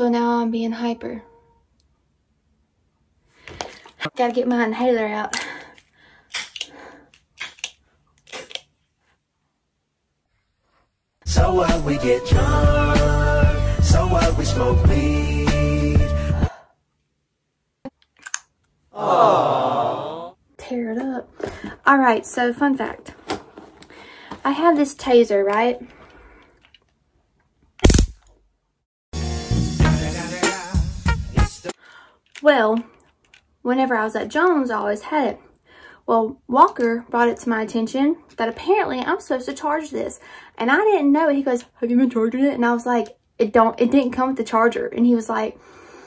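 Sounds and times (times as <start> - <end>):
stun gun electric zap: 27.8 - 28.2.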